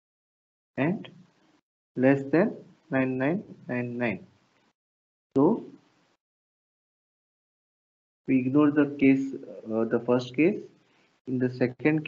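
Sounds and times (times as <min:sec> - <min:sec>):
man saying a word: 0:00.8 - 0:01.0, 0:02.0 - 0:04.2.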